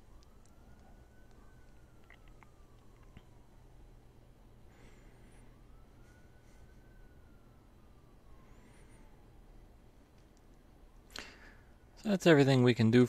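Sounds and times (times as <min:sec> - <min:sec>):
faint rising and falling tone: 0:00.0 - 0:12.2
faint low hum: 0:00.0 - 0:13.0.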